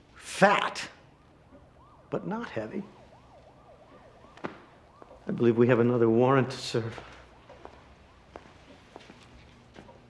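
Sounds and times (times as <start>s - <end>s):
distant yelping siren: 0.0s - 10.0s.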